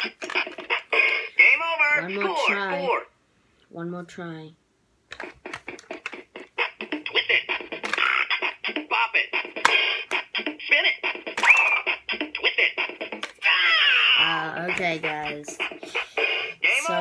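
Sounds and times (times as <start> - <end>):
recorded voice calling commands: 1.0 - 3.1, 14.0 - 15.7, 16.6 - 17.0
fast electronic beat: 5.2 - 17.0.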